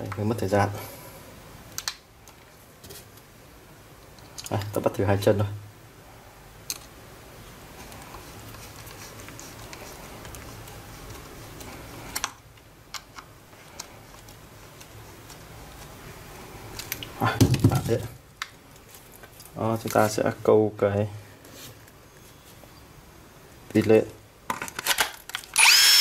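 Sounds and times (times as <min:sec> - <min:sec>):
screwdriver scraping: 0:25.6 - 0:26.0.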